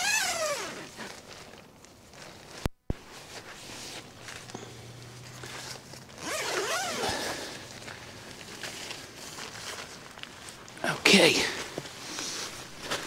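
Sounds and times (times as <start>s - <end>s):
tent zip being unzipped: 0.0s - 1.2s, 5.3s - 7.8s.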